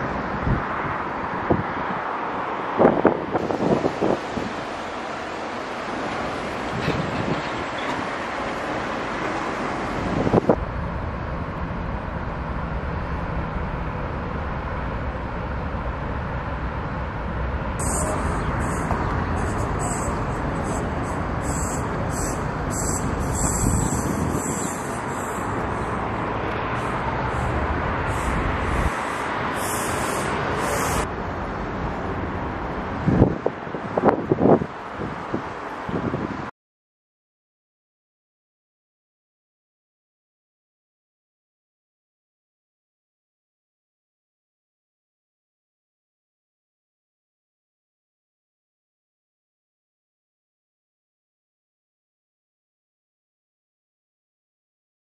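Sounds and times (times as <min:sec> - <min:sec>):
wind buffeting microphone: 0:00.0 - 0:05.0, 0:06.0 - 0:11.2, 0:17.8 - 0:31.1, 0:32.4 - 0:36.5
city traffic rumble: 0:00.0 - 0:36.5.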